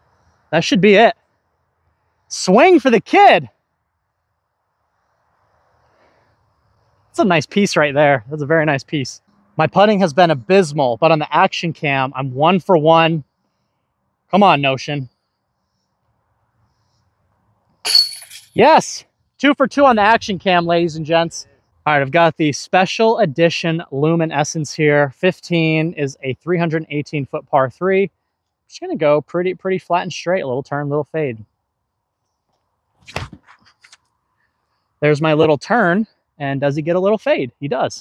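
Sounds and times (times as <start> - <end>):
disc hitting metal chains: 17.9 - 18.6.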